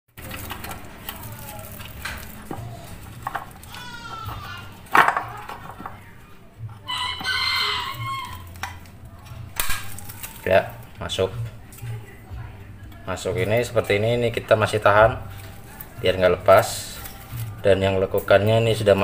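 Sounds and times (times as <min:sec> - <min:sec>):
rooster crowing: 0:06.8 - 0:08.5.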